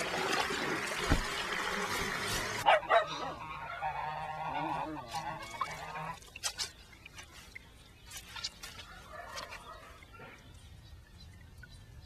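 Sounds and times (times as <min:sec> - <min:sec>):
poultry calling: 0:02.7 - 0:06.2.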